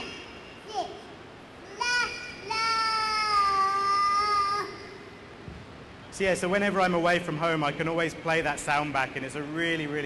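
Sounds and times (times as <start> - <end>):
young boy counting: 0.0 - 5.2.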